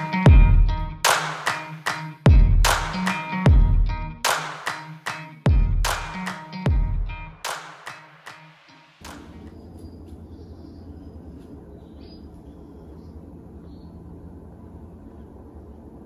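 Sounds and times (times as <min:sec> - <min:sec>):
generator humming: 0:09.0 - 0:16.0.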